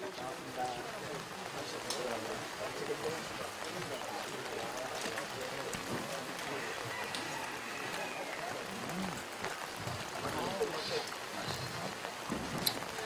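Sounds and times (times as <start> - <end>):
people talking quietly: 0.0 - 13.0.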